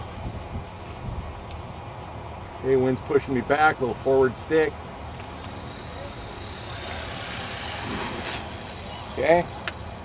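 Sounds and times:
wind rumbling on microphone: 0.0 - 1.8
helicopter rotor blades swishing: 5.0 - 10.0.

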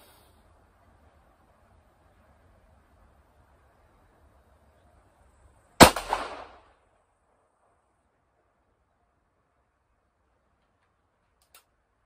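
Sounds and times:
pistol shot with echo: 5.8 - 6.8.

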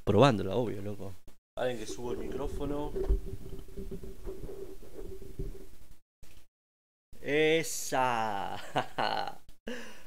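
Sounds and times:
microphone bumps and rubbing: 1.9 - 6.0.

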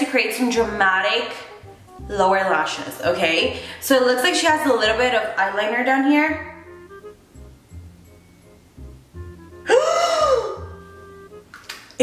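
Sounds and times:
background music with low beat: 0.5 - 3.8, 4.4 - 5.2, 6.3 - 11.9
woman crying out in pain: 9.6 - 10.6.

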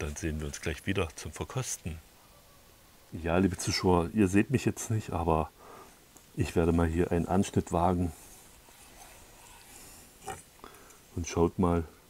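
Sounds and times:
knife scrape: 8.0 - 10.5.

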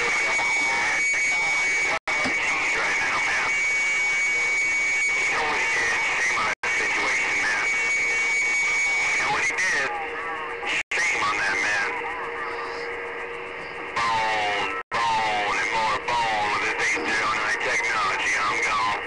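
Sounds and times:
garbled distant radio voices: 0.0 - 19.0
radio static: 0.0 - 19.0
steady high whistle: 6.9 - 9.5.

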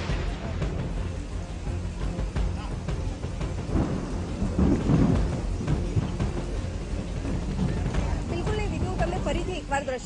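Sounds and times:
low rumbling thunder: 0.0 - 9.5
rain hiss: 0.0 - 10.0.

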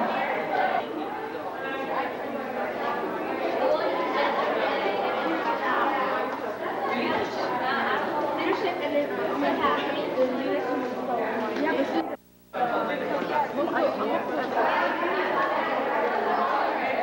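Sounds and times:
chatter of many people: 0.0 - 17.0.

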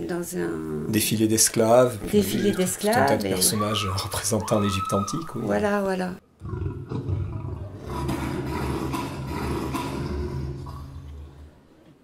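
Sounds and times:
lion roaring: 6.4 - 11.6.

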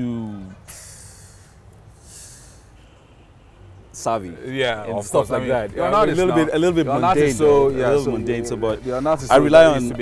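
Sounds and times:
faint low background noise: 0.0 - 10.0
person breathing into microphone: 0.7 - 2.8.

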